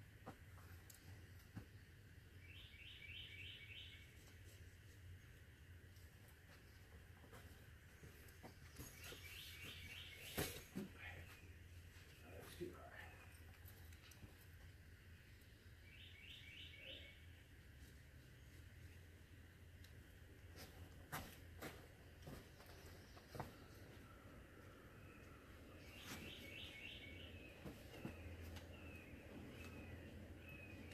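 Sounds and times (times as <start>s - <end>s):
faint bird chirps: 2.4s - 4.2s, 15.8s - 17.4s, 23.3s - 30.9s.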